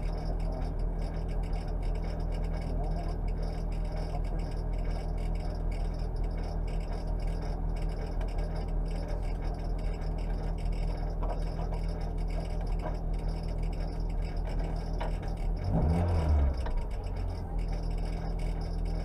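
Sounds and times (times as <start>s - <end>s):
car engine idling: 0.0s - 19.0s
engine revving blip: 15.0s - 19.0s.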